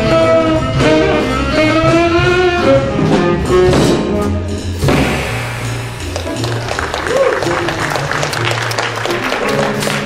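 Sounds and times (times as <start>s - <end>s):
piano chords: 0.0s - 10.0s
saxophone: 0.0s - 10.0s
upright double bass: 0.0s - 10.0s.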